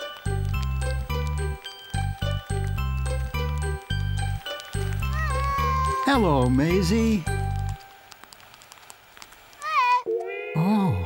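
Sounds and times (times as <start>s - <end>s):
cartoon rain ticks: 0.0s - 10.3s.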